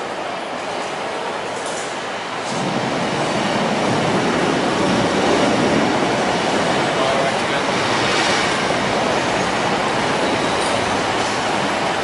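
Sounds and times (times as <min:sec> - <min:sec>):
train engine and wheel noise: 0:00.0 - 0:12.0.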